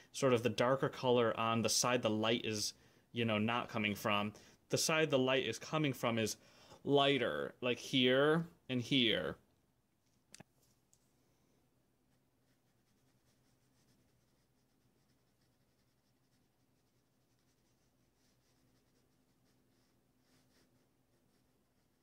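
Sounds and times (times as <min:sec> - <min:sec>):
paintbrush scratching on canvas: 0:12.1 - 0:22.0.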